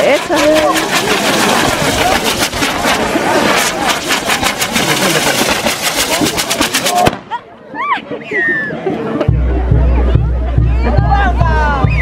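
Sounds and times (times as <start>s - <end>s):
fireworks crackling and banging: 0.0s - 7.5s.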